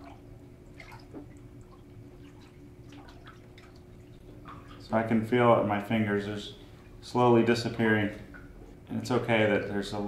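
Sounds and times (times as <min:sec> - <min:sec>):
small splashes and drips: 0:00.0 - 0:05.1, 0:08.1 - 0:08.8
hand stirring water: 0:00.0 - 0:05.2.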